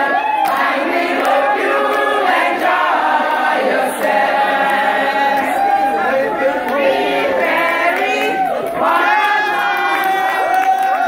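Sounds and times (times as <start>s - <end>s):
crowd chatter: 1.0s - 10.6s.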